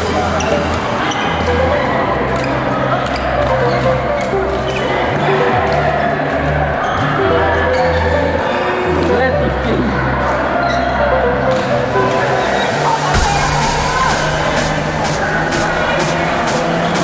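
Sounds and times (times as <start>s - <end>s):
background music with bass line: 0.0s - 17.0s.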